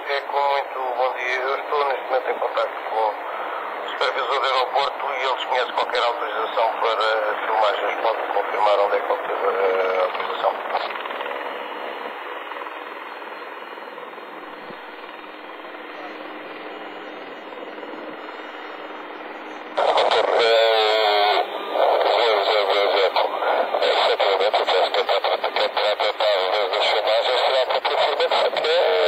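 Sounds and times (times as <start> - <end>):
radio static hiss: 0.0 - 29.0
radio voice transmission: 0.0 - 29.0.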